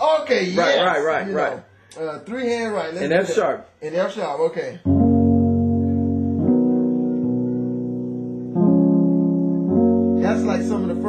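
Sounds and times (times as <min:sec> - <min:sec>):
piano gospel chords: 0:04.8 - 0:11.0.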